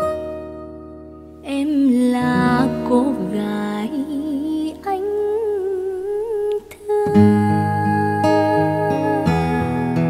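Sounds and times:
woman singing long note: 1.5s - 10.0s.

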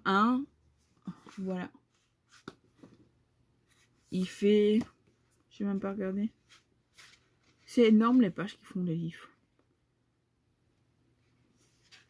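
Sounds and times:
book being handled: 0.8s - 8.4s, 11.4s - 12.0s.

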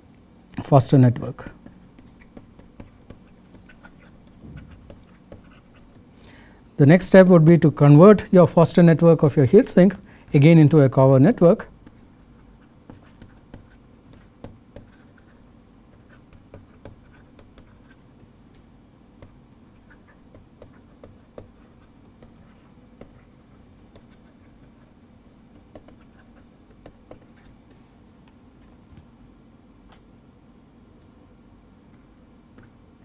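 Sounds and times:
low room hum: 0.0s - 33.0s
stylus writing on tablet: 1.2s - 6.0s, 11.8s - 18.1s, 19.2s - 27.6s, 32.0s - 32.8s.

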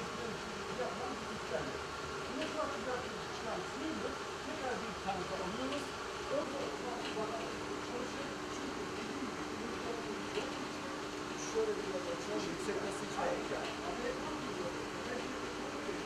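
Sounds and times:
equipment humming: 0.0s - 16.0s
group of people talking: 0.0s - 16.0s
steady humming tone: 0.0s - 16.0s.

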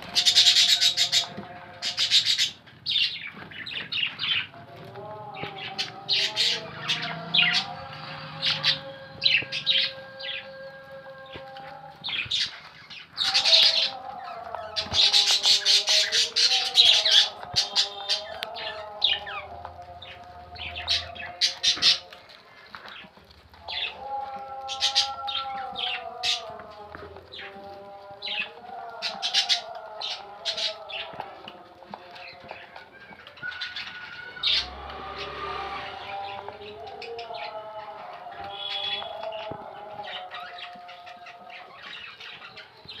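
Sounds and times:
bird chirping: 0.0s - 31.3s, 32.0s - 43.0s.

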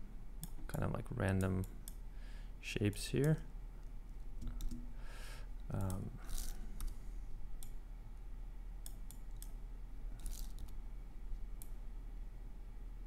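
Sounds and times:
computer mouse clicks: 3.2s - 4.8s, 8.8s - 9.6s, 10.2s - 10.8s.

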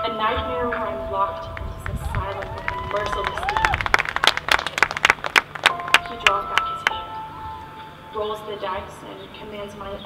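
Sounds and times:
sustained band tones: 5.6s - 9.4s.

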